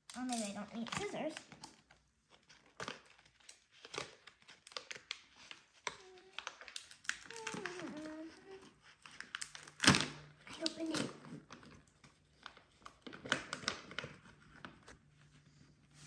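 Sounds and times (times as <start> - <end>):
plastic pouch crinkling and tearing: 0.0 - 14.9.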